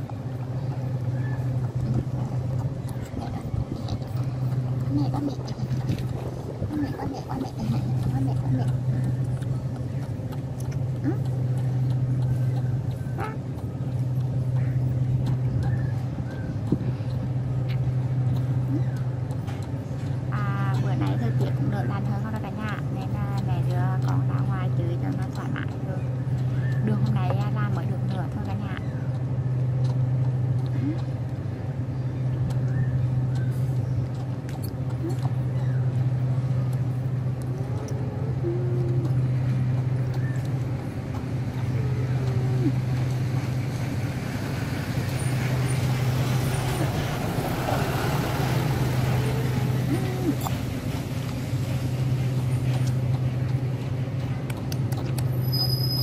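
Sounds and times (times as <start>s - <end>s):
low mechanical hum: 0.0s - 56.0s.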